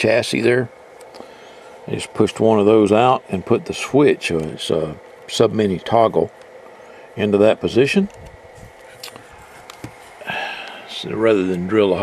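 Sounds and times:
radio handling noise: 8.0 - 10.8.

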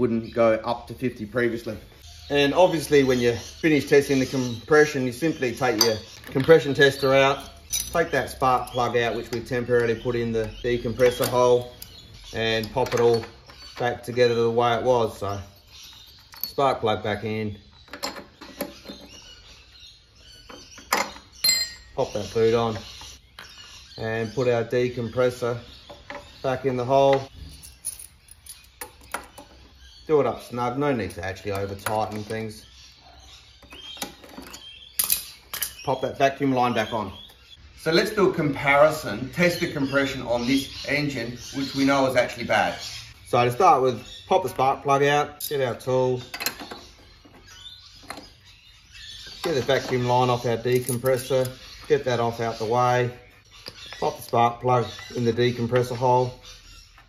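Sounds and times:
handling engine parts: 2.6 - 23.6, 24.6 - 29.8, 33.6 - 36.2, 44.4 - 56.3
metal clinks of spanner: 5.7 - 11.9, 20.9 - 21.9.

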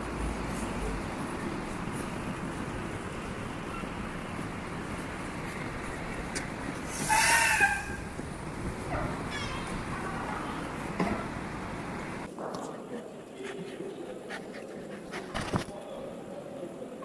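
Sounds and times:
city street traffic: 0.0 - 12.3.

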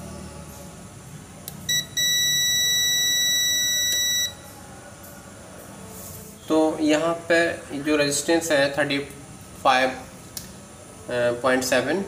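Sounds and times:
multimeter continuity beep: 1.6 - 4.4.

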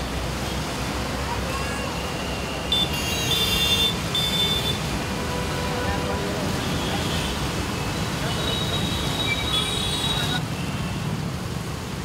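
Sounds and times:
rumble of traffic engines: 0.0 - 12.0.

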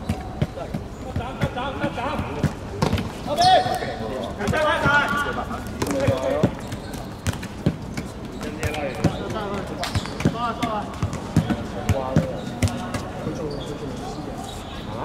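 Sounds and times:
ball bouncing thuds: 0.0 - 13.1.

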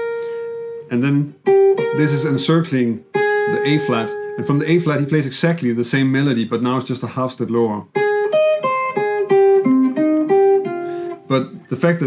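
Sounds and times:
electric jazz guitar melody: 0.0 - 5.8, 7.8 - 12.0.

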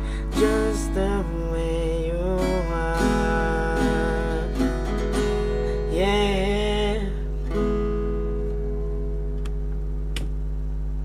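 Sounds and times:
acoustic guitar chord ringing: 0.0 - 11.0
low hum: 0.0 - 11.0.

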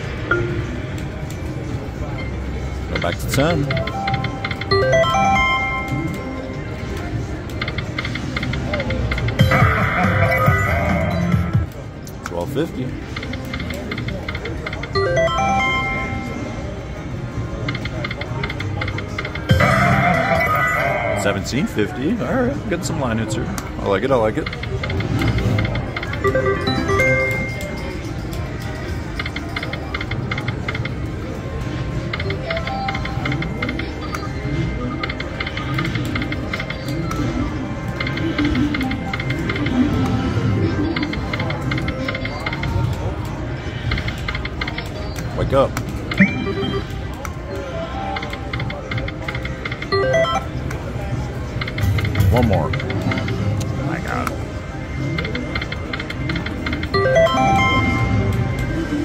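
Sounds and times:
murmur of voices: 0.0 - 59.0
slot machine game music and chimes: 0.2 - 1.1, 2.0 - 6.9, 8.4 - 11.8, 13.9 - 16.9, 19.2 - 22.9, 25.0 - 29.8, 46.0 - 51.0, 51.7 - 59.0.

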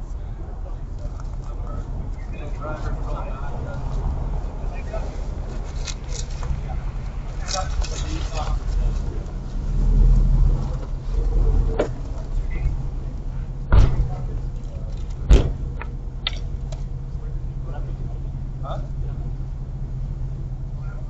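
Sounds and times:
distant voices: 0.0 - 21.0
vehicles idling hum: 0.0 - 21.0.

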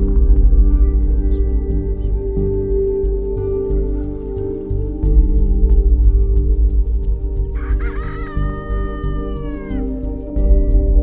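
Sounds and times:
background music: 0.0 - 11.0
rooster crowing: 7.6 - 9.9.

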